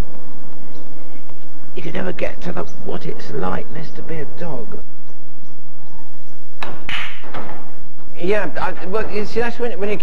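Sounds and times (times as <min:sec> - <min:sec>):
pool balls cracking: 0:06.6 - 0:07.8.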